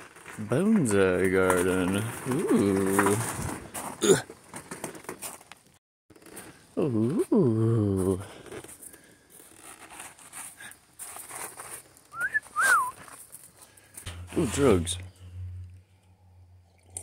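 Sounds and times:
man making wordless ooh: 6.8 - 8.3
high whistled chirps: 12.1 - 13.1.

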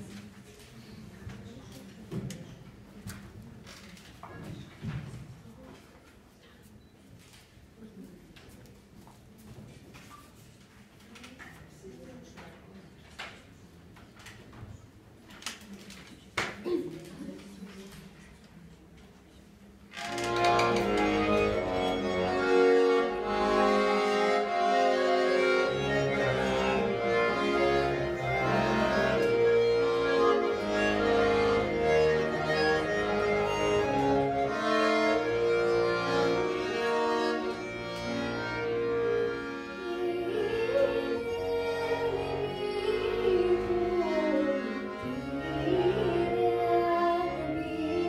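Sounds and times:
accordion playing folk tune: 20.0 - 48.0
child singing: 39.9 - 48.0.

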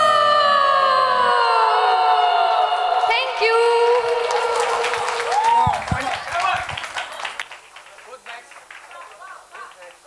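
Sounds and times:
woman singing long note: 0.0 - 5.2.

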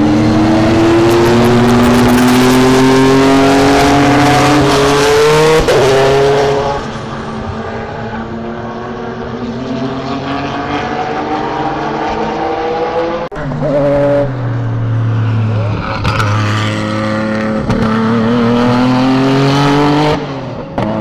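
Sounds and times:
race car engine at full throttle: 0.0 - 21.0.

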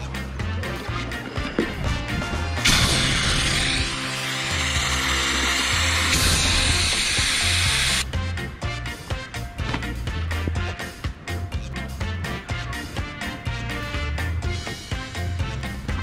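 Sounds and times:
background music: 0.0 - 16.0
air hissing out of valve: 2.6 - 8.0.

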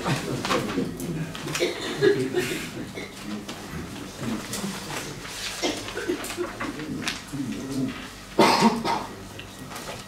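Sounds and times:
low murmured talk: 0.0 - 10.0
person coughing: 1.5 - 3.2, 5.6 - 6.3, 8.4 - 9.2.

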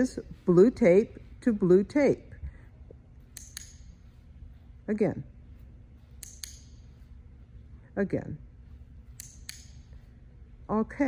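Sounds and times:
tagger clicking: 3.2 - 4.1, 6.0 - 7.0, 9.0 - 10.0.

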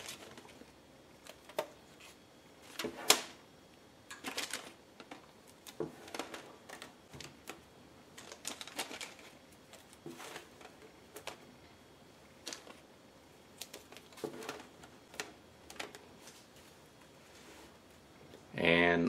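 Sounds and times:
plastic bag rustling: 0.0 - 3.4, 4.1 - 11.5.

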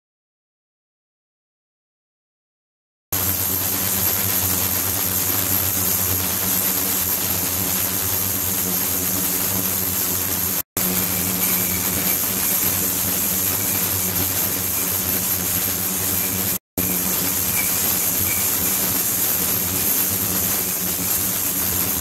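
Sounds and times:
ultrasonic cleaner hiss and hum: 3.2 - 22.0.

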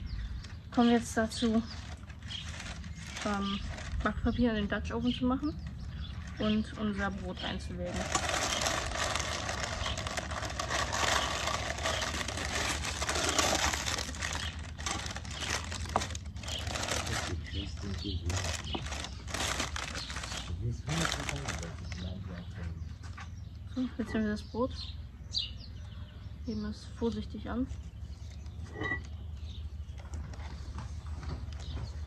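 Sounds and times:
baking paper crinkling: 1.2 - 4.6, 7.4 - 22.1.

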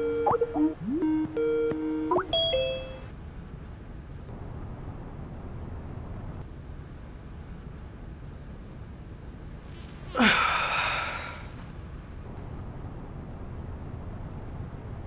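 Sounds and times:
video call ringing tone: 0.0 - 3.1
two-note chime: 1.3 - 3.1.

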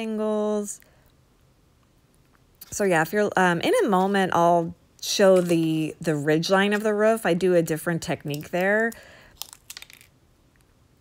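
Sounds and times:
faint crackles and clicks: 8.3 - 10.7.

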